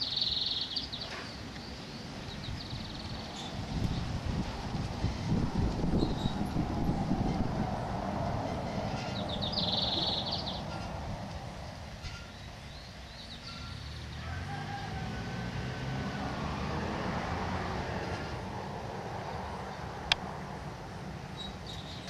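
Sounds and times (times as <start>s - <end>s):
steady low rumble: 2.4s - 12.1s
rooster crowing: 14.1s - 16.4s.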